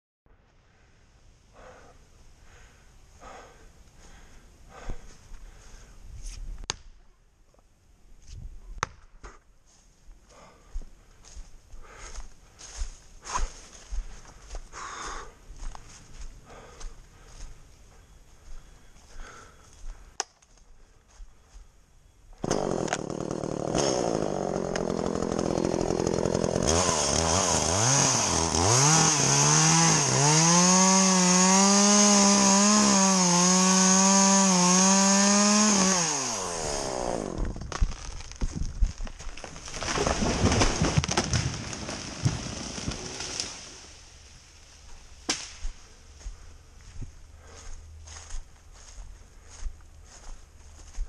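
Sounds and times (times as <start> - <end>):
tree cracking and crashing: 22.4 - 30.9, 37.2 - 44.3
chainsaw cutting wood: 22.4 - 44.1.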